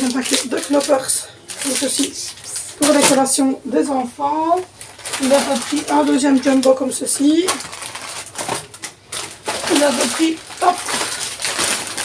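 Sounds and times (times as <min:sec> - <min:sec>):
woman speaking: 0:00.0 - 0:07.7, 0:09.6 - 0:11.2
grocery packets rustling: 0:00.0 - 0:12.0.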